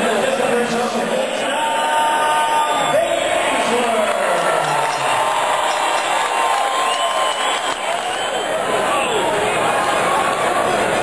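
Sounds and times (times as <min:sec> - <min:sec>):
crowd talking and shouting: 0:00.0 - 0:11.0
crowd cheers and whoops: 0:01.6 - 0:11.0.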